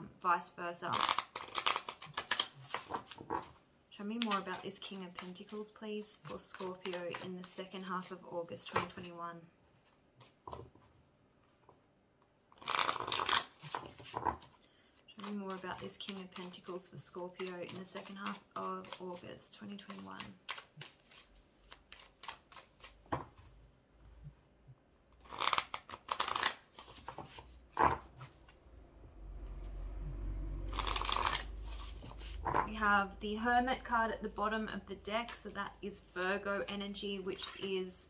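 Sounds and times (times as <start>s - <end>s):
cards being shuffled: 0.9s - 3.6s, 4.2s - 9.1s, 12.5s - 14.6s, 15.2s - 23.5s, 25.2s - 28.6s, 30.7s - 32.7s
low steady rumble: 28.1s - 36.9s.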